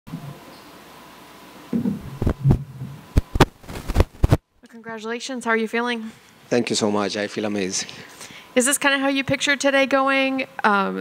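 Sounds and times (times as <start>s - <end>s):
sharp thumps and knocks: 1.8s - 4.4s.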